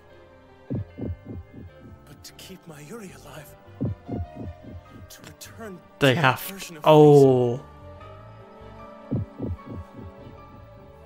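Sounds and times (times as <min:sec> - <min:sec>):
droning dramatic music: 0:00.1 - 0:06.9, 0:07.5 - 0:11.0
heartbeat thumps: 0:00.7 - 0:02.0, 0:03.8 - 0:05.1, 0:09.1 - 0:10.2.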